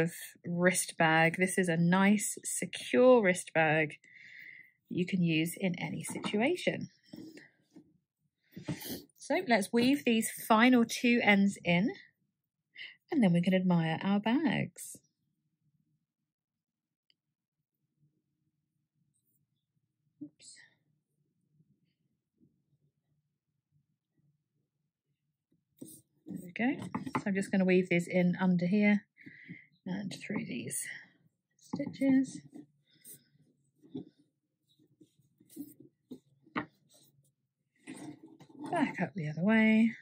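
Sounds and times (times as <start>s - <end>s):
yarn rustling through stitches: 30.0s - 39.8s.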